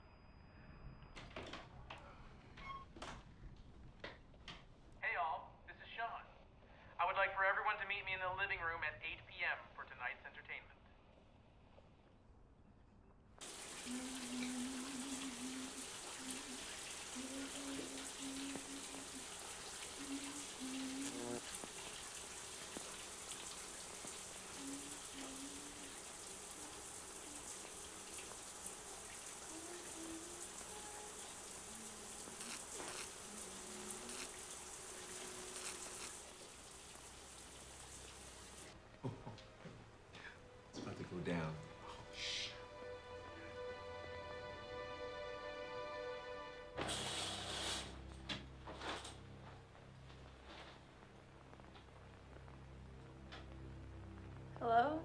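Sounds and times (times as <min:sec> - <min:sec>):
shower water running: 0:13.4 - 0:39.2, 0:46.7 - 0:54.8.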